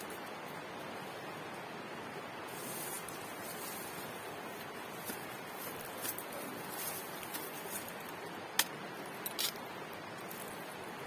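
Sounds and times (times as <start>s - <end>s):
outdoor hiss: 0.0s - 11.0s.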